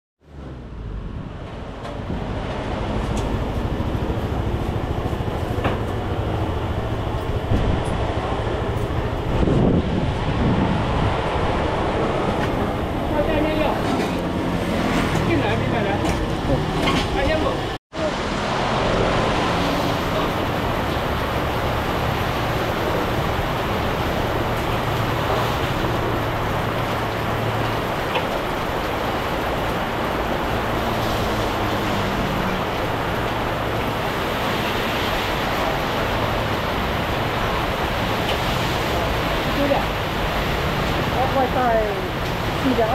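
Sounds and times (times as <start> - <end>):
roadside traffic: 0.2 - 42.9.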